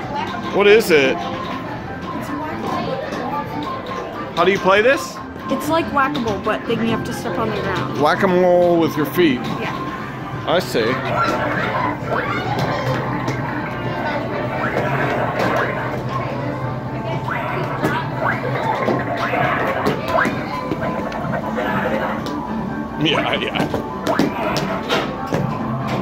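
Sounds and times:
chatter: 0:00.0 - 0:25.7
background music: 0:00.0 - 0:26.0
arcade game blips and hits: 0:03.1 - 0:26.0.

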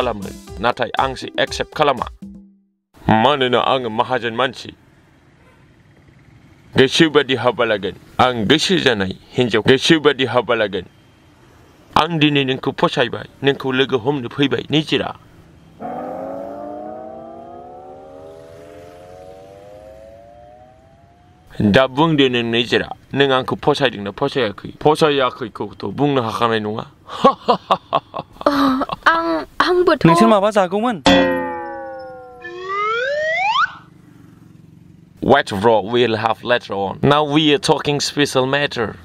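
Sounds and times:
metallic ding sinking in pitch: 0:15.8 - 0:21.4, 0:31.1 - 0:33.1
rising comedy tone: 0:15.8 - 0:21.9, 0:31.1 - 0:33.9.

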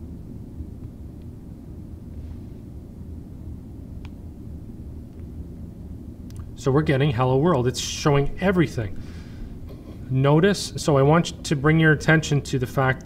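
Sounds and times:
low background rumble: 0:00.0 - 0:13.0.

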